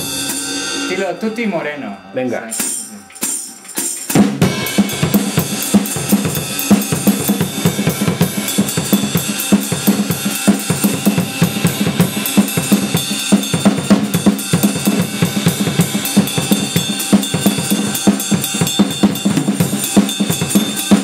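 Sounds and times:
cymbal wash: 0.0s - 21.0s.

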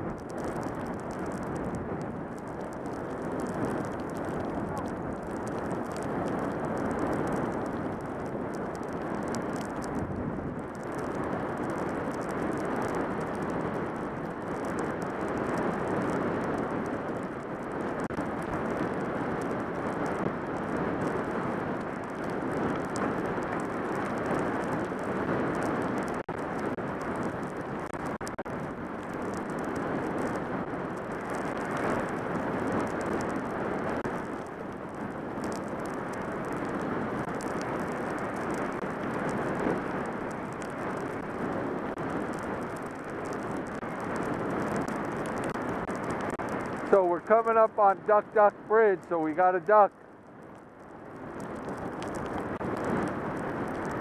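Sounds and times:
wind rushing past microphone: 0.0s - 54.0s.

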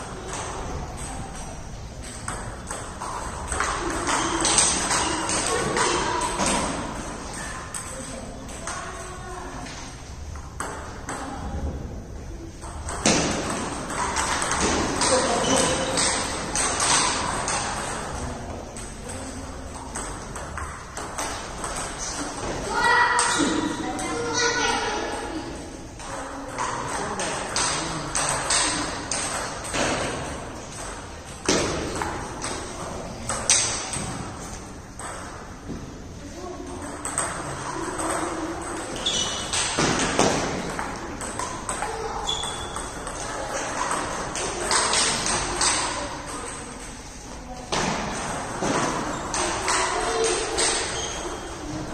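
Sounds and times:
ping pong ball clicking off paddles: 0.1s - 9.0s, 9.6s - 11.4s, 12.6s - 23.6s, 26.0s - 35.8s, 36.6s - 47.0s, 47.7s - 51.7s
ball bouncing on table: 12.6s - 18.2s, 26.0s - 34.4s, 36.7s - 46.8s.

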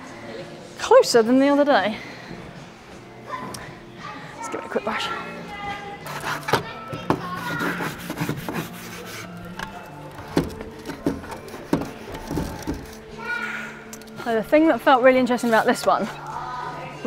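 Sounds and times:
background chatter: 0.0s - 17.0s
music: 0.0s - 17.0s
brush scrubbing climbing holds: 6.0s - 13.0s.

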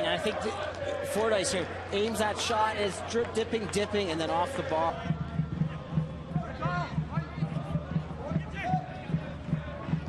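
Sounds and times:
stadium crowd: 0.0s - 10.0s
steady low drumbeat: 4.8s - 10.0s.

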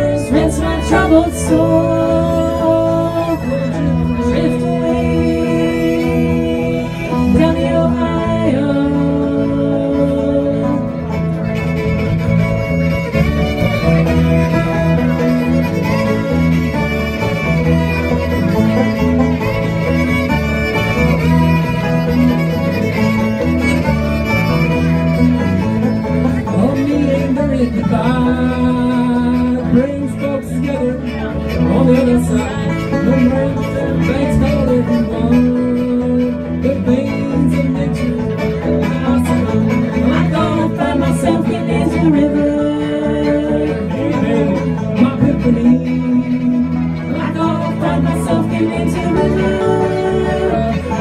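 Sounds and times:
acoustic guitar: 0.0s - 51.0s
banjo: 0.0s - 51.0s
electric bass line: 0.0s - 51.0s
fiddle: 0.0s - 51.0s.

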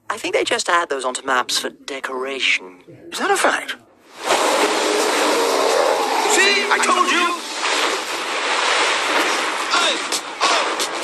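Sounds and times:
surging churning water: 4.1s - 11.0s.

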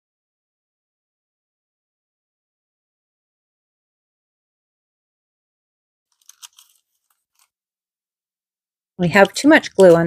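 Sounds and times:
paper crackling and rustling: 6.1s - 7.6s.

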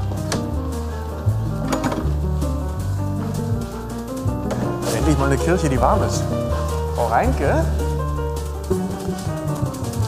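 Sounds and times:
low bass line: 0.0s - 10.0s.

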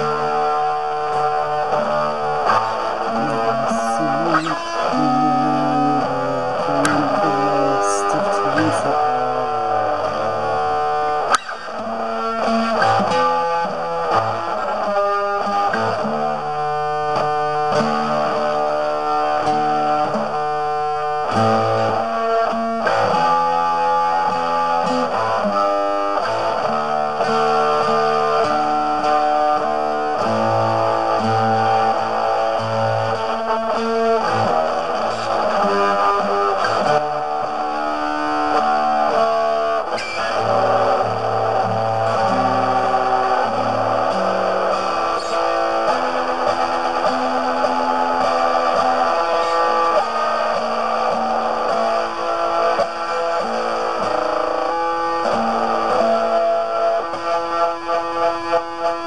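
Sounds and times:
distorted guitar chords: 0.0s - 59.0s.

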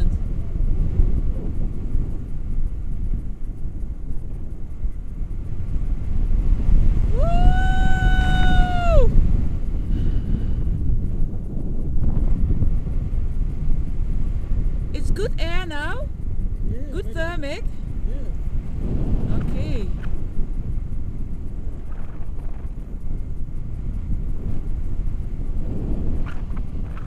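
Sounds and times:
wind rushing over microphone: 0.0s - 27.0s
person's high cry: 7.2s - 9.1s.

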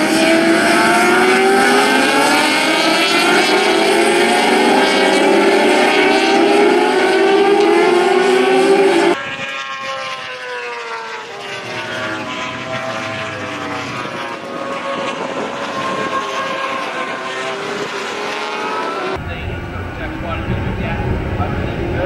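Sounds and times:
racing motorcycles passing at high revs: 0.0s - 22.0s
low engine rumble: 19.2s - 22.0s.

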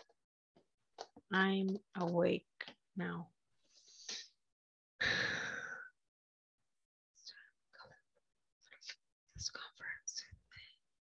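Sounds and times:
person whispering: 7.2s - 8.0s, 8.6s - 10.9s.

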